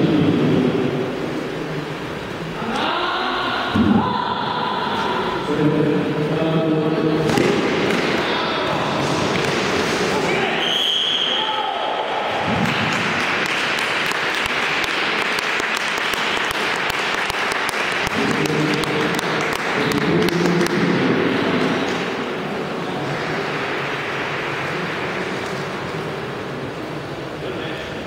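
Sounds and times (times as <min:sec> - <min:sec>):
spectators clapping: 0:12.5 - 0:21.1, 0:23.0 - 0:25.8.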